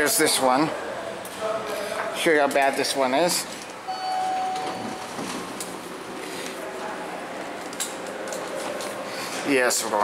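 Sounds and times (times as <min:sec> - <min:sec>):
elevator door hum: 0:03.8 - 0:06.2
elevator door beep: 0:03.9 - 0:05.4.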